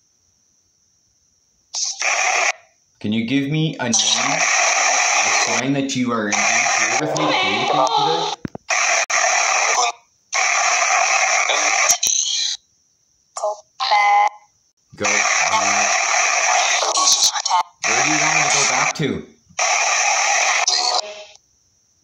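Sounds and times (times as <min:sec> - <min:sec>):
faint high whine: 0:01.7 - 0:13.0, 0:15.0 - 0:22.0
chopped radio voice fragments: 0:01.8 - 0:02.6, 0:03.8 - 0:12.5, 0:15.0 - 0:21.3
white noise bursts: 0:01.8 - 0:02.6, 0:04.0 - 0:12.2, 0:15.0 - 0:19.0, 0:19.6 - 0:21.1.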